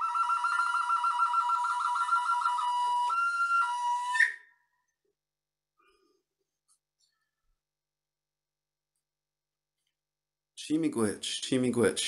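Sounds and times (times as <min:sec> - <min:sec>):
wooden flute melody: 0:00.0 - 0:05.0.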